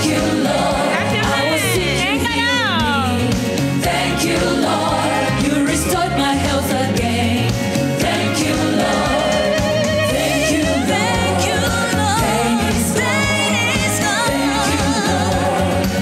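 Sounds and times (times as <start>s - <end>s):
backing music with bass line: 0.0s - 16.0s.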